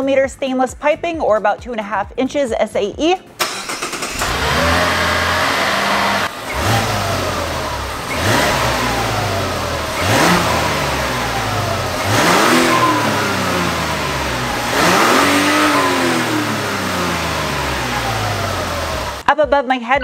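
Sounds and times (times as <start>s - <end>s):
car engine revving: 3.4s - 19.2s.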